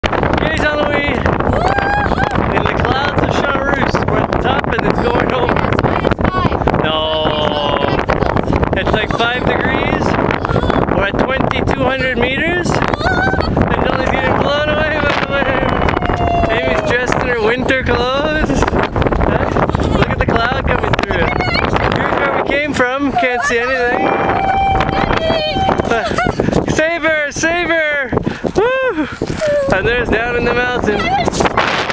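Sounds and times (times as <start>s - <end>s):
wind buffeting microphone: 0.0s - 31.9s
child calling out: 12.9s - 13.6s, 23.2s - 26.0s
person's held vocal cry: 23.1s - 26.4s, 28.6s - 29.8s.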